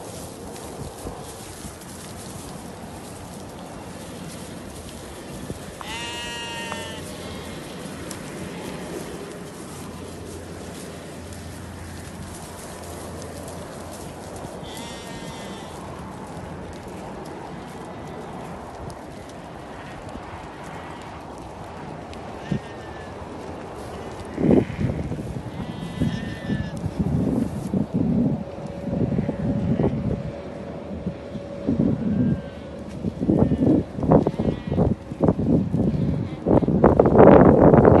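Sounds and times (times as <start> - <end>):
sheep hooves shuffling on sand: 0.0 - 38.0
steady background noise: 0.0 - 38.0
sheep bleating: 5.8 - 9.0, 14.6 - 15.8, 22.4 - 23.2, 24.0 - 26.8, 32.1 - 35.0.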